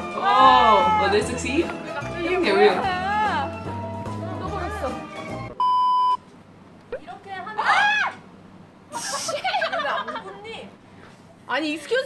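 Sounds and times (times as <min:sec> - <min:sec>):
music: 0:00.0 - 0:05.6
high test-tone beep: 0:05.6 - 0:06.2.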